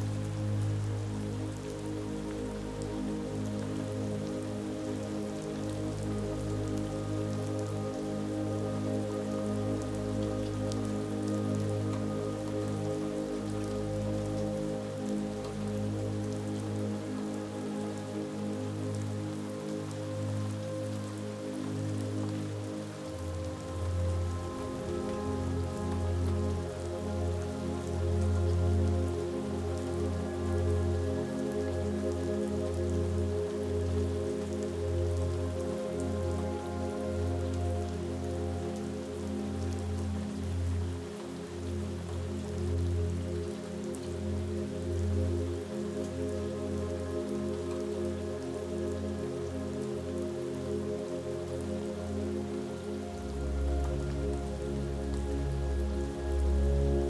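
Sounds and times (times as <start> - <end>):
slow ambient music: 0.0 - 57.0
steady rain falling: 0.0 - 57.0.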